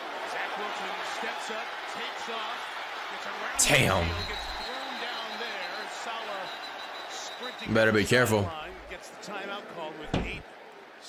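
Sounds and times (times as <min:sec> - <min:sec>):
man commentating: 0:03.4 - 0:05.1, 0:07.3 - 0:10.4.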